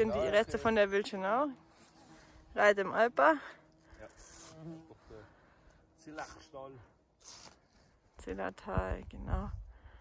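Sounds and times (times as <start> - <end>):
flying insect buzzing: 0.0 - 8.0.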